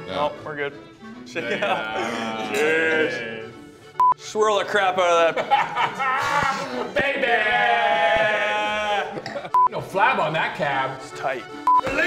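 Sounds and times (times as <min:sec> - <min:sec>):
man's high laugh-like vocal: 0:05.4 - 0:07.0.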